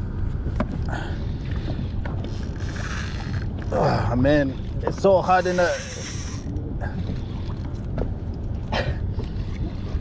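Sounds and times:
steady low rumble: 0:00.0 - 0:05.3, 0:06.1 - 0:10.0
fishing reel gears cranking: 0:02.2 - 0:04.2, 0:05.2 - 0:06.6.

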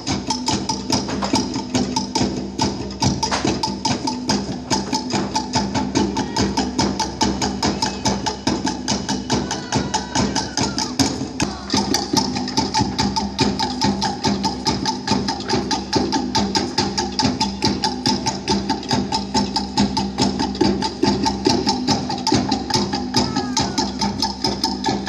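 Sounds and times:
fast wooden drum strokes: 0:00.0 - 0:25.0.

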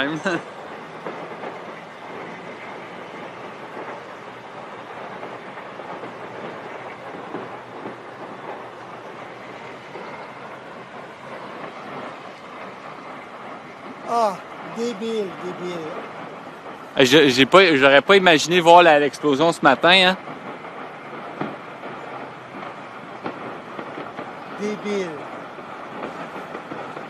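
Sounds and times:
faint irregular crackles: 0:00.0 - 0:27.0
steady noisy din: 0:00.0 - 0:27.0.

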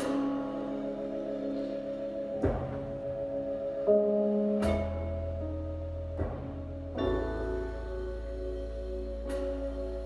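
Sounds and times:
jazz band playing: 0:00.0 - 0:10.0.

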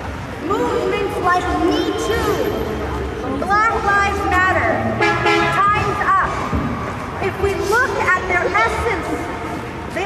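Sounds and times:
city street noise: 0:00.0 - 0:10.0
woman speaking through microphone: 0:00.4 - 0:06.6, 0:07.2 - 0:10.0.

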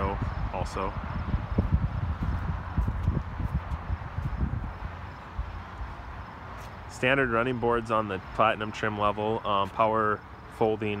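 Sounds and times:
wind buffeting microphone: 0:00.0 - 0:07.9
footsteps on pavement: 0:01.5 - 0:07.0.

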